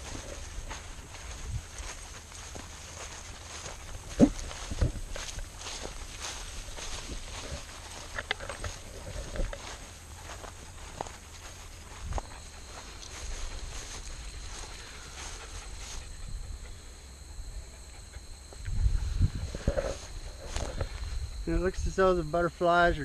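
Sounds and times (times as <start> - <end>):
wind rumble on microphone: 0.0 - 2.0, 3.6 - 9.8, 18.6 - 21.9
footsteps through grass: 0.0 - 16.4, 18.6 - 22.3
insects buzzing: 0.0 - 23.0
lower insect tone: 0.0 - 23.0.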